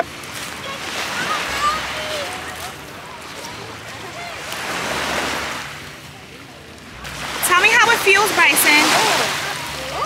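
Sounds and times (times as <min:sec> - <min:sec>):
small waves on pebbly shore: 0:00.0 - 0:06.0, 0:06.9 - 0:10.0.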